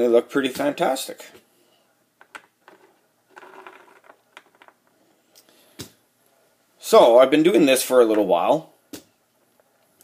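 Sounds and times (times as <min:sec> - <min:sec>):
plastic miniature scraping: 0:02.7 - 0:04.8.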